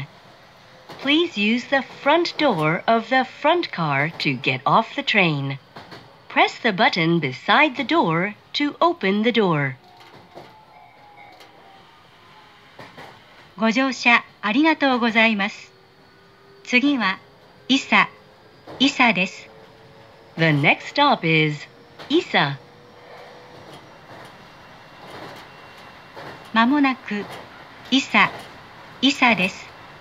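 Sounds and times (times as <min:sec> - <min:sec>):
faint train running noise: 0:00.0 - 0:30.0.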